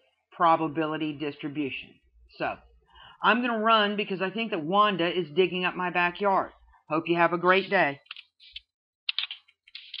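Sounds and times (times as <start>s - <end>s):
keyboard and mouse clicks: 8.0s - 10.0s.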